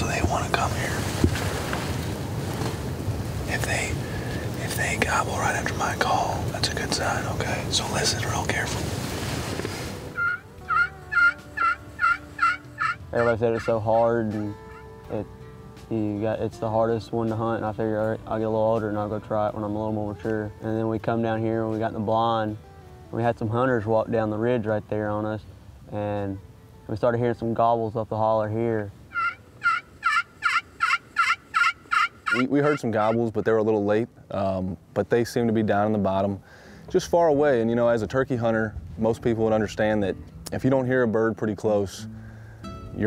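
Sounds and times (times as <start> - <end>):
turkey call yelps: 10.2 - 14.0, 14.7 - 14.9, 29.1 - 33.2.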